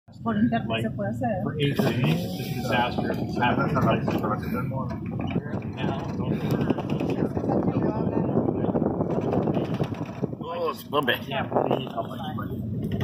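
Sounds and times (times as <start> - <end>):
people talking: 0.1 - 8.9, 10.4 - 12.6
car driving on sand: 1.6 - 13.0.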